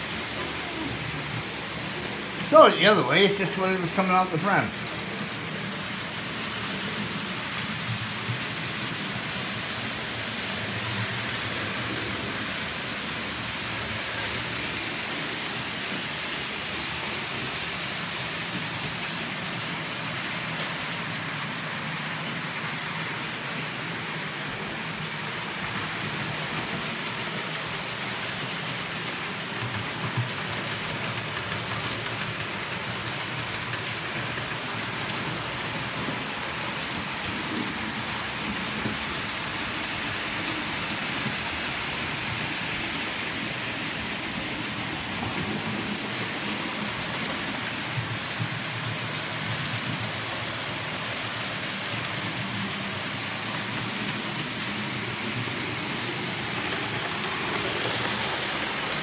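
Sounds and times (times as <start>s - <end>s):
model train motors whirring: 0.0s - 59.0s.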